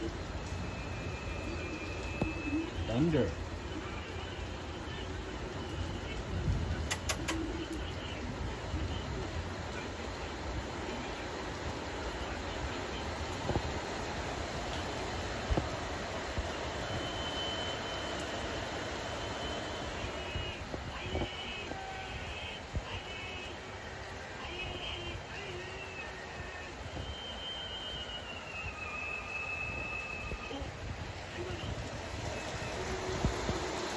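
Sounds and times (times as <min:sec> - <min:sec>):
steady rain: 0:00.0 - 0:33.9.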